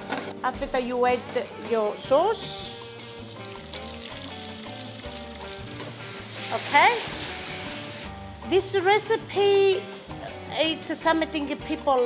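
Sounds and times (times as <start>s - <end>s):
food sizzling in a frying pan: 1.4s - 12.0s.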